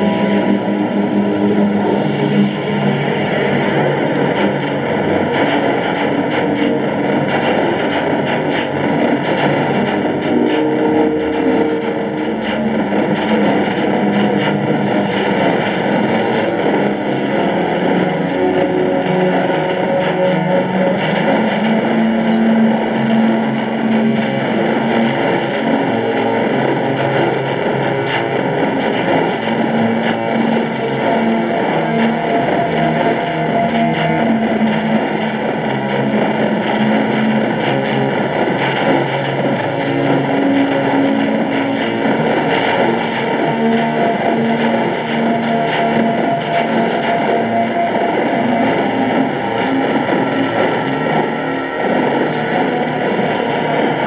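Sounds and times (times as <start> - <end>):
distorted guitar music: 0.0 - 54.0.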